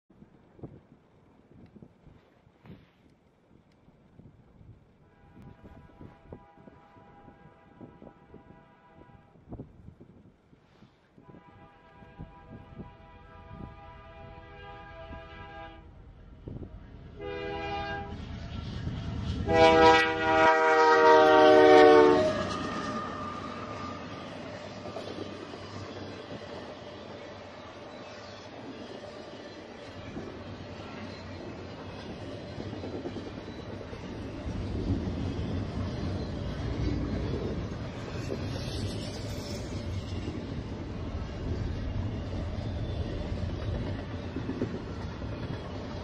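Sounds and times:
train low rumble: 0.1s - 46.0s
locomotive air horn: 5.0s - 9.4s, 11.2s - 15.9s, 17.2s - 18.2s, 19.4s - 24.1s.

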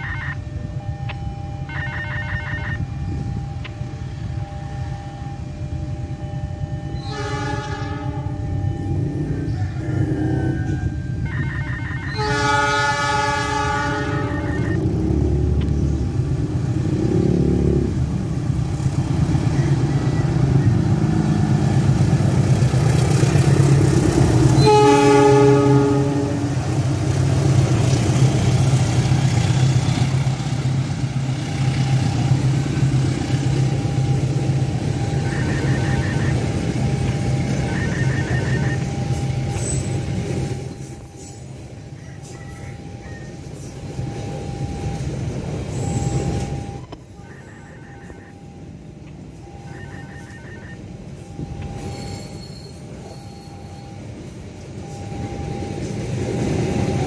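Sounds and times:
train engine and wheels rumbling: 0.0s - 57.0s
locomotive horn blasts: 4.4s - 14.8s, 24.4s - 26.7s.

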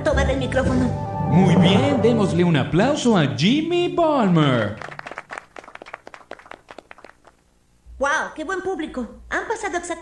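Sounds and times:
audience applause: 4.2s - 7.4s.

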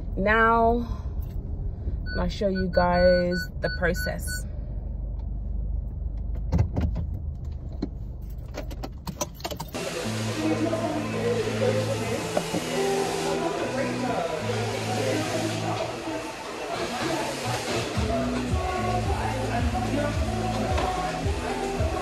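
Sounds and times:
car engine and road rumble: 0.0s - 14.8s
background music with bass line: 17.5s - 22.0s.

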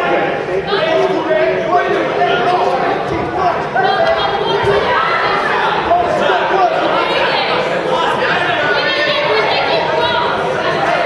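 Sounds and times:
crowd chatter: 0.0s - 11.0s
people calling out: 0.0s - 11.0s.

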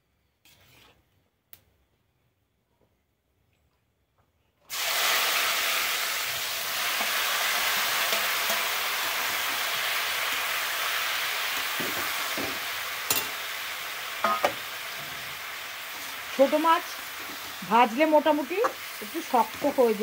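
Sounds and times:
vegetables sizzling in hot oil: 4.7s - 20.0s.

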